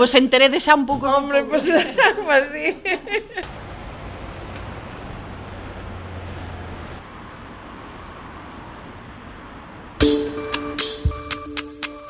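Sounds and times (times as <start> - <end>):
road traffic rumble: 2.8 - 10.7
vehicle engine drone: 3.4 - 10.0.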